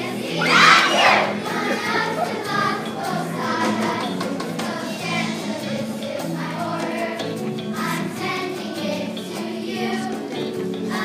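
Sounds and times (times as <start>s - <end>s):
children's choir singing: 0.0s - 11.0s
instrumental accompaniment: 0.0s - 11.0s.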